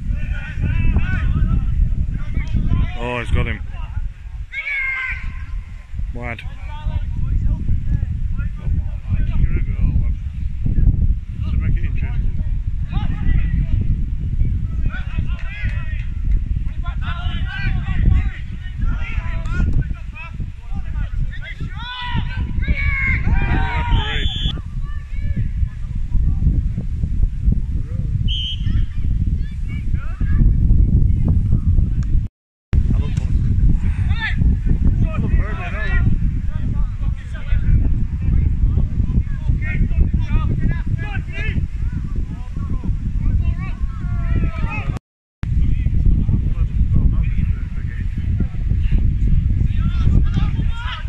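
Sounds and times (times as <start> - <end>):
wind rumble on microphone: 0.0 - 51.0
players shouting: 4.5 - 5.6, 20.8 - 24.5
referee's whistle blasts: 23.9 - 24.5, 28.3 - 28.9.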